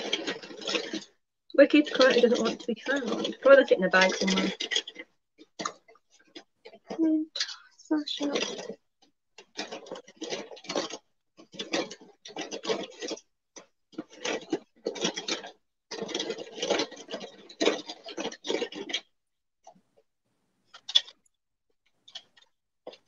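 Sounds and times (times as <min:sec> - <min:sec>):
rummaging through bag of items: 0:00.0 - 0:08.8, 0:09.4 - 0:19.1.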